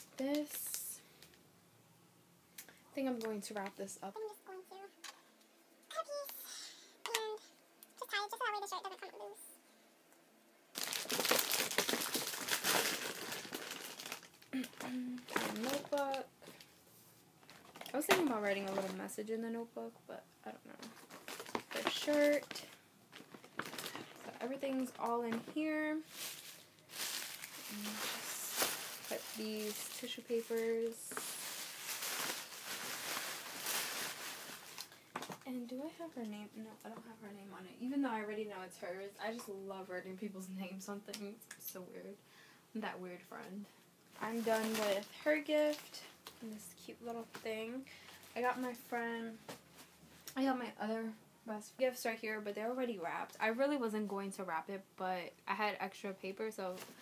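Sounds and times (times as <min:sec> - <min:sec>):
gift wrapping crinkling: 0:10.7 - 0:16.7, 0:17.4 - 0:19.1, 0:20.7 - 0:35.4, 0:44.2 - 0:49.9.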